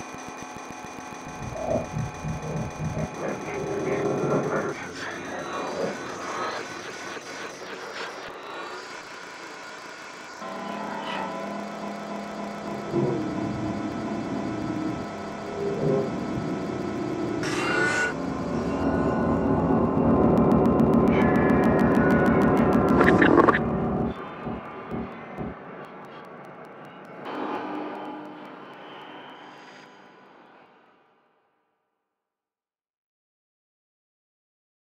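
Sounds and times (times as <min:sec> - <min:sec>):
scattered clicks: 0:00.0 - 0:06.5, 0:19.5 - 0:29.9
low pulses: 0:01.2 - 0:04.7, 0:18.1 - 0:27.2
electroacoustic music from frog calls: 0:20.1 - 0:27.2.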